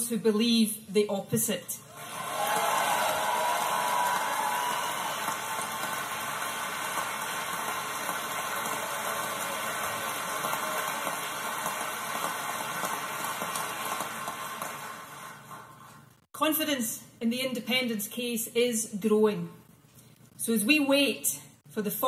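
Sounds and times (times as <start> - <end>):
audience applauding: 2.0 - 16.0.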